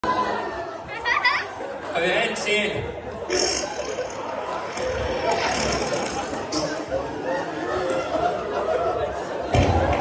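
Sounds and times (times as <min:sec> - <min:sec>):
chatter in a large hall: 0:00.0 - 0:10.0.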